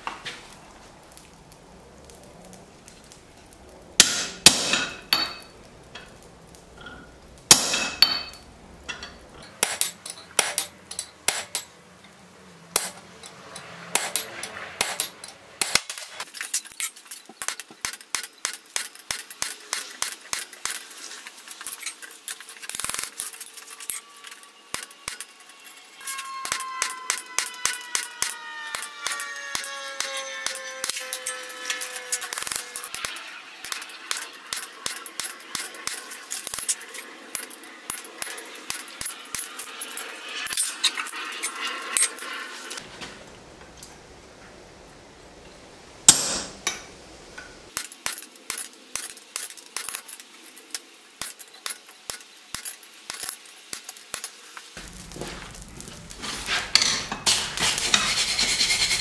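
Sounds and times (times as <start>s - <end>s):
hammer ringing on hot metal: 4.0s - 6.2s, 6.8s - 11.7s, 26.1s - 31.4s, 46.1s - 46.9s.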